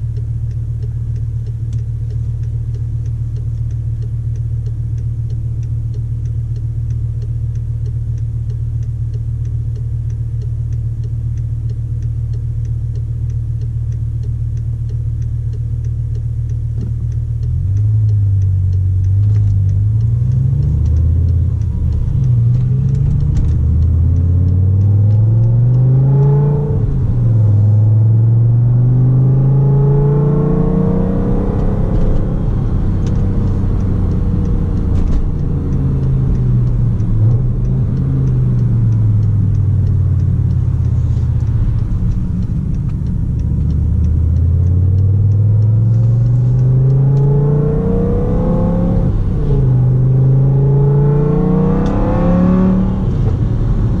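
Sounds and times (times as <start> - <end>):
car engine idling: 0.0 - 52.1
car accelerating through gears: 16.6 - 54.0.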